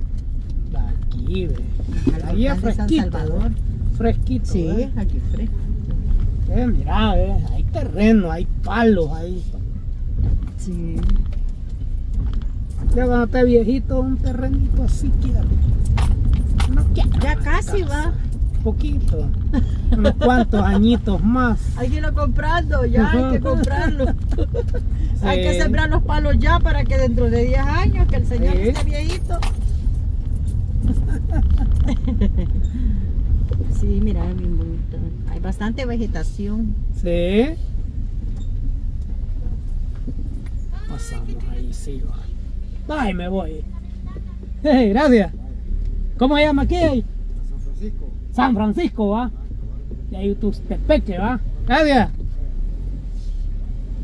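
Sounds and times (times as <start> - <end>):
car rolling on cobblestones: 0.0 - 54.0
person speaking: 16.7 - 24.5.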